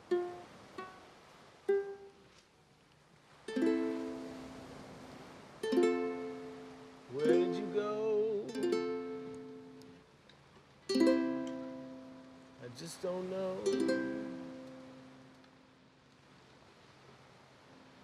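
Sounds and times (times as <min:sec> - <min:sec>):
ukulele chords strummed: 0:00.0 - 0:02.4, 0:03.5 - 0:05.0, 0:05.6 - 0:10.1, 0:10.8 - 0:15.8.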